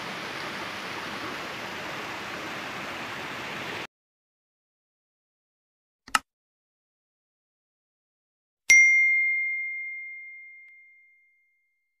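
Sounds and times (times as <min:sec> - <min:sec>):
notification bell chime: 0:08.7 - 0:11.8.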